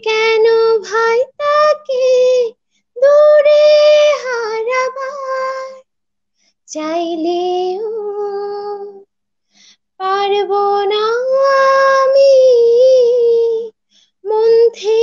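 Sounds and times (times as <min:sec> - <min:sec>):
woman singing unaccompanied: 0:00.0 - 0:05.8, 0:06.7 - 0:09.1, 0:10.0 - 0:15.0.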